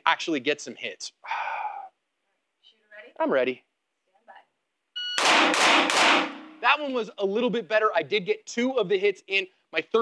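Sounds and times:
shot timer beep: 5.0s - 5.5s
pistol shots echoing indoors: 5.2s - 6.6s.

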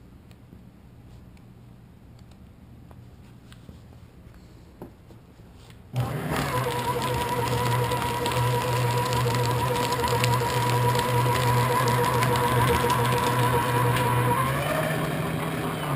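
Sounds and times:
paper shredder motor hum: 5.9s - 15.9s.

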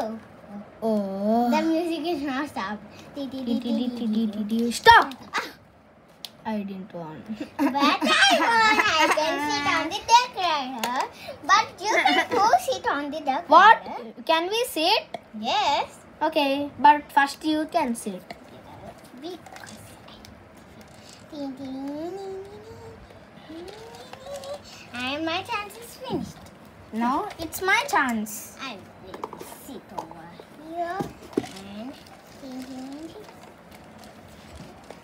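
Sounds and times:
child laughing: 7.4s - 9.9s, 11.8s - 12.7s.

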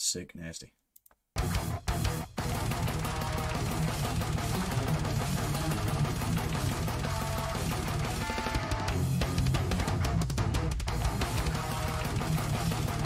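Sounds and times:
distorted electric guitars: 1.4s - 13.0s
drums: 1.4s - 13.0s.

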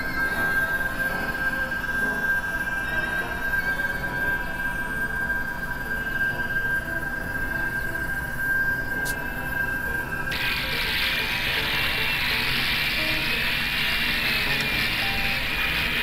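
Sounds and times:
electronic drone music: 0.0s - 16.0s.

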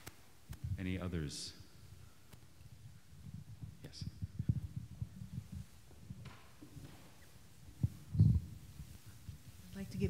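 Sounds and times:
microphone handling thumps: 2.3s - 10.0s.

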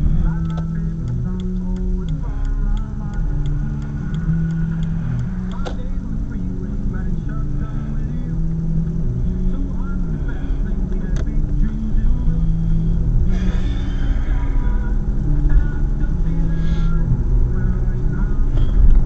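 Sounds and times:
engine and road rumble: 0.0s - 19.0s
music with singing from car radio: 0.0s - 19.0s.

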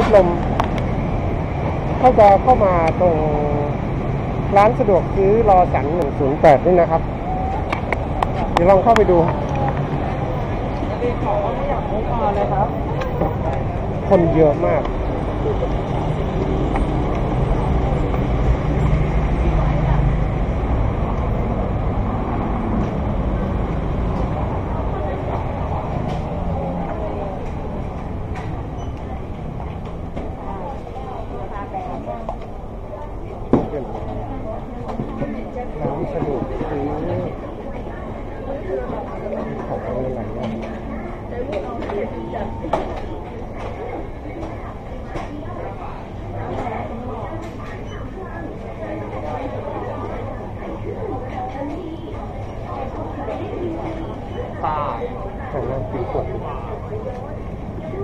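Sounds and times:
city street traffic rumble: 0.0s - 58.0s
engine hum: 0.0s - 58.0s
people's voices: 0.0s - 58.0s.

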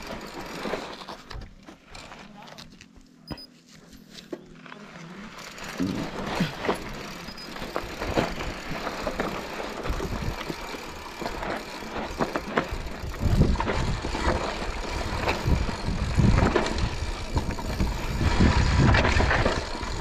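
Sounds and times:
bike rattling and clicking: 0.0s - 20.0s
tyres crunching over stones: 0.0s - 20.0s.

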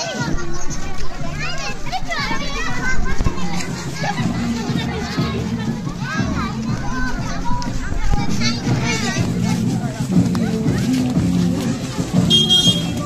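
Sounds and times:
children talking and calling out: 0.0s - 13.0s
music: 0.0s - 13.0s.

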